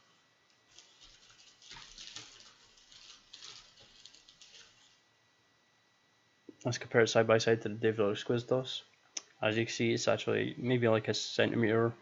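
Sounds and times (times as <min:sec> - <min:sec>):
hands handling small objects: 0:00.7 - 0:05.0.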